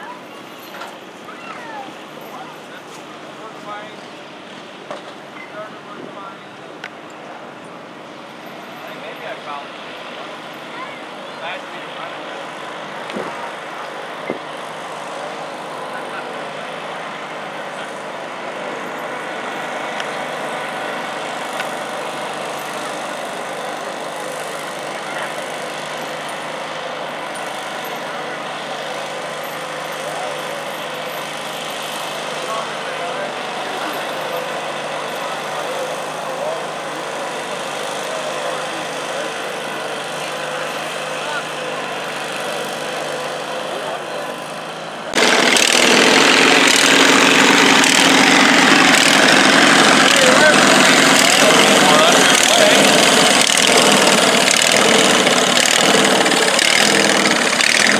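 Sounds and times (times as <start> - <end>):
crowd chatter: 0.0 - 57.9
small engines idling: 0.0 - 57.9.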